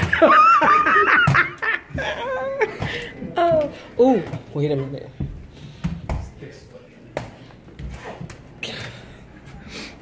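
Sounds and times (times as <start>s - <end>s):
person laughing loudly: 0.0s - 2.9s.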